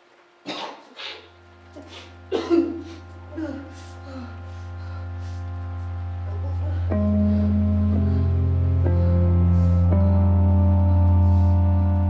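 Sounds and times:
person coughing hard: 0:00.5 - 0:03.8
low droning music note: 0:01.3 - 0:12.0.

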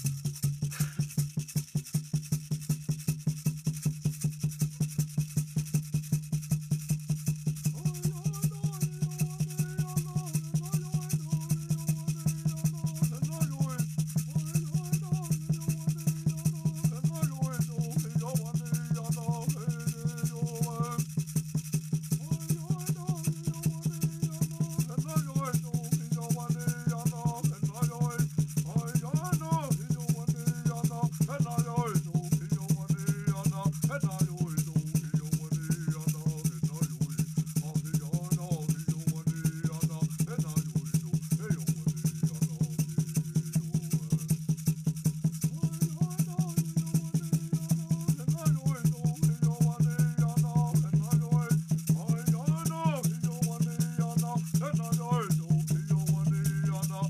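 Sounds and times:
hand rattle shaken: 0:00.0 - 0:57.0
man singing a chant: 0:07.7 - 0:21.2, 0:22.2 - 0:44.3, 0:45.5 - 0:57.0.

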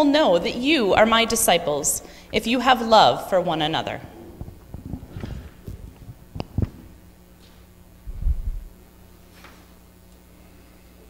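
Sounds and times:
microphone handling knocks: 0:04.2 - 0:07.0.

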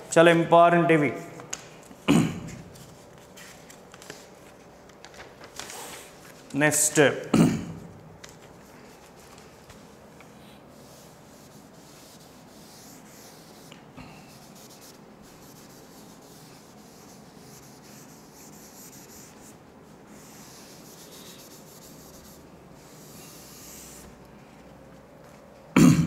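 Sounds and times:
duster rubbing chalkboard: 0:08.5 - 0:24.2.

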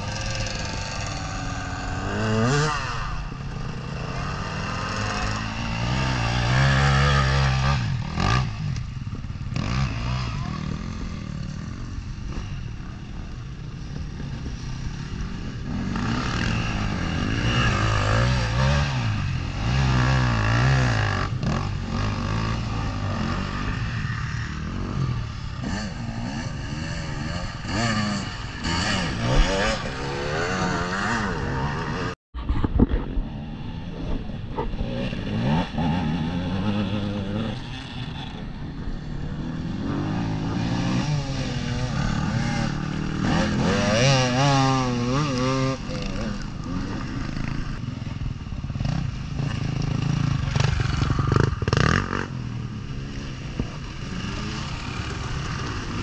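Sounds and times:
motorcycles revving hard: 0:00.0 - 0:32.2, 0:33.2 - 0:56.0.

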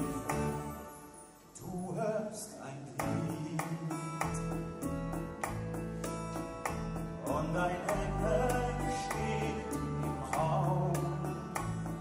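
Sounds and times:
live music with singing: 0:00.0 - 0:12.0.

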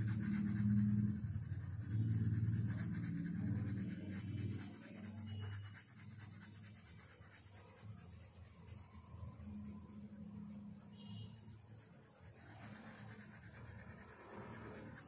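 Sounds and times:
pencil scratching on paper: 0:00.0 - 0:15.0.

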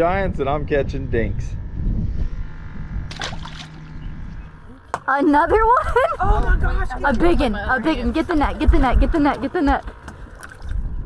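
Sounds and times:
steady low rumble: 0:00.0 - 0:11.0
water splashing beside boat hull: 0:03.1 - 0:03.9, 0:09.2 - 0:10.9.

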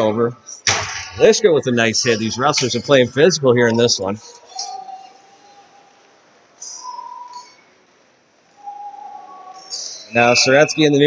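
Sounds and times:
faint whistle-like tones: 0:00.0 - 0:11.0.

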